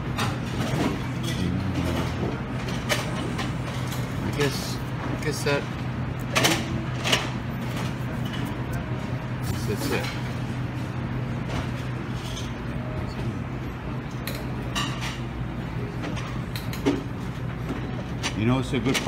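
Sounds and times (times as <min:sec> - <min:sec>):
dishes and utensils clinking: 0:14.2 - 0:15.3.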